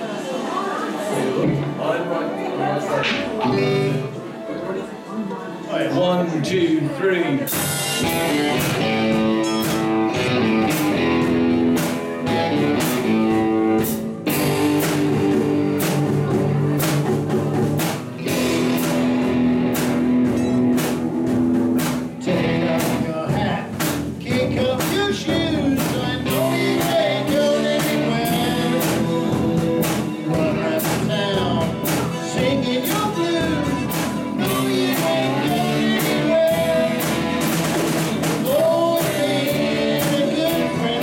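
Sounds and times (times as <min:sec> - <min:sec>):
live rock band playing: 0:01.0 - 0:05.0, 0:06.5 - 0:41.0
man singing: 0:03.2 - 0:04.1, 0:22.2 - 0:41.0.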